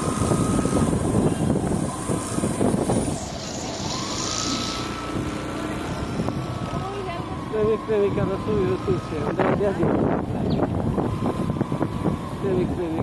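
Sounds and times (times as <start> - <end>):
road and wind noise: 0.0 - 13.0
thin steady whine: 0.0 - 13.0.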